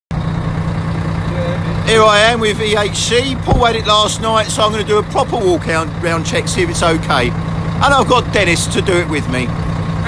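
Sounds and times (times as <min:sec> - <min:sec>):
diesel engine idling: 0:00.1 - 0:10.0.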